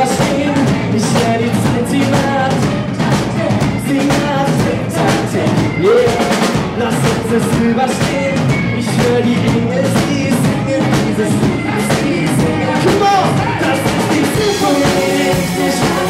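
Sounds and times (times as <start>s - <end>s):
bass guitar: 0.0s - 16.0s
drum kit: 0.0s - 16.0s
electric guitar: 0.0s - 16.0s
man singing: 0.0s - 16.0s.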